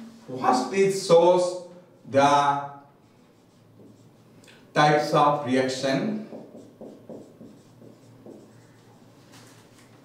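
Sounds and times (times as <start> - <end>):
marker writing on whiteboard: 1.9 - 10.0.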